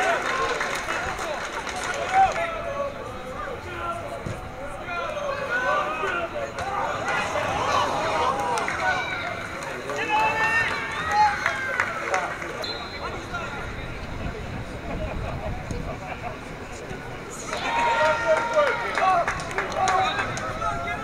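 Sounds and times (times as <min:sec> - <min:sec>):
players and spectators shouting: 0:00.0 - 0:12.4, 0:17.3 - 0:21.0.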